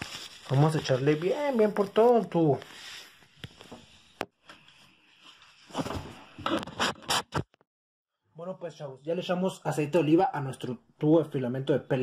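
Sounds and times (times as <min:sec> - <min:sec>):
rubbing and scraping: 0:05.3 - 0:07.5.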